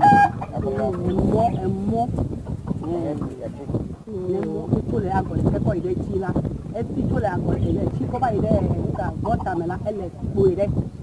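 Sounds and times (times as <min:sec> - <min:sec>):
chicken squawk: 0:00.0 - 0:01.1
people talking: 0:00.0 - 0:02.2, 0:02.8 - 0:10.8.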